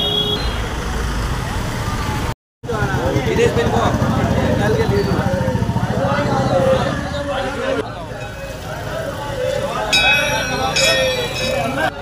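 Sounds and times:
car and scooters engine rumble: 0.0s - 12.0s
background voices: 5.5s - 12.0s
high steady tone: 8.0s - 12.0s.

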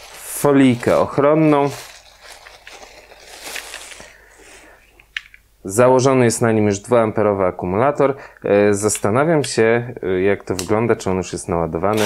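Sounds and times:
plastic film crinkling: 0.0s - 4.3s.

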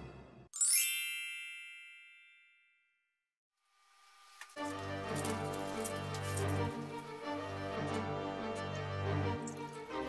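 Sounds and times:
bright sparkling chime: 0.6s - 2.8s
spooky music: 4.6s - 10.0s.

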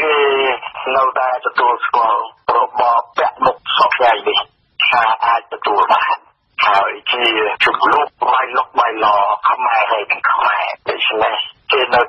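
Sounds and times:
person reading radio news: 0.0s - 12.0s.

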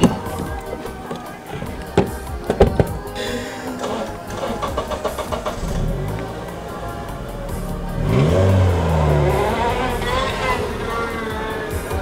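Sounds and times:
background music: 0.0s - 12.0s
car engine revving: 0.0s - 12.0s.

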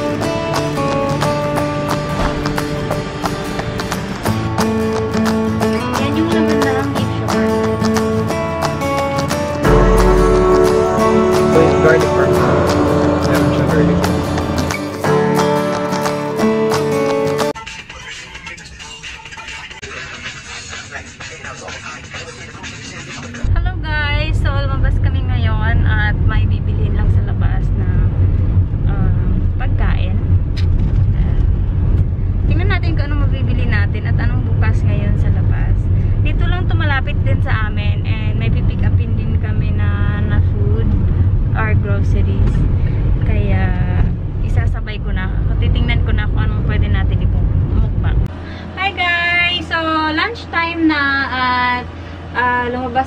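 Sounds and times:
car rumble: 0.0s - 17.5s, 18.4s - 53.0s
music: 0.0s - 23.6s
woman talking: 5.8s - 7.5s, 23.0s - 28.2s, 28.9s - 30.3s, 31.1s - 31.5s, 32.5s - 53.0s.

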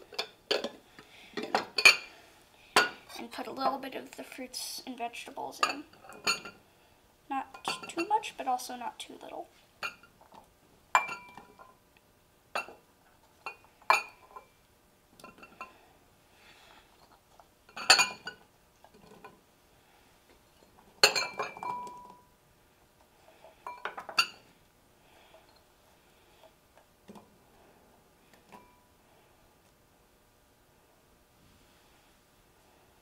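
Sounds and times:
glass bowl clinking on ceramic: 11.0s - 11.7s, 17.7s - 18.4s, 21.0s - 22.3s, 23.6s - 24.4s.

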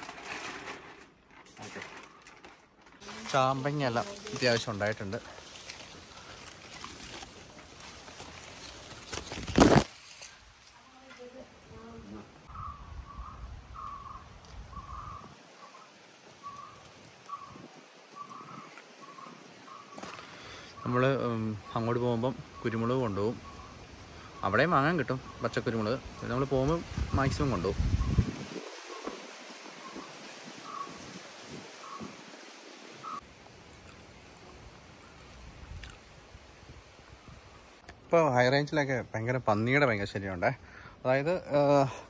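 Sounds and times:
leaves rustling: 0.0s - 42.0s.

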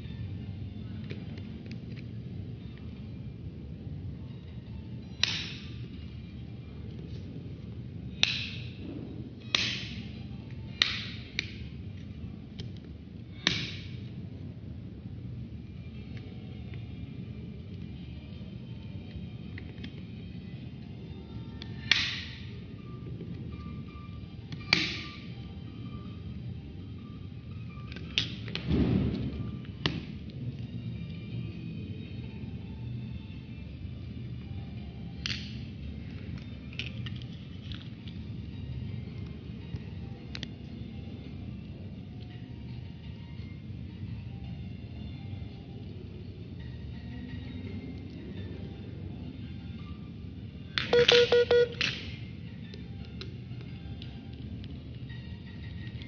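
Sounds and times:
plastic clips snapping: 5.2s - 5.6s, 8.2s - 8.6s, 9.5s - 10.0s, 10.8s - 11.6s, 13.4s - 13.9s, 21.8s - 22.4s, 51.7s - 52.2s.

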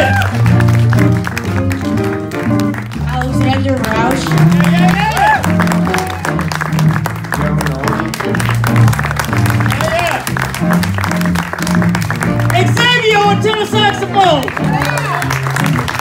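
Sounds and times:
audience applause: 0.0s - 16.0s
jazz band playing: 0.0s - 16.0s.

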